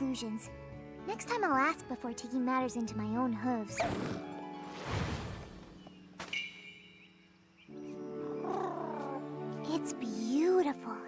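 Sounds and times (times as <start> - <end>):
background music chords: 7.0 - 11.0.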